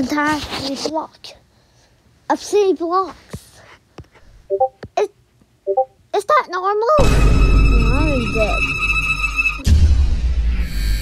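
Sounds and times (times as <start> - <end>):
short electronic blips: 4.5 - 4.8, 5.7 - 5.9.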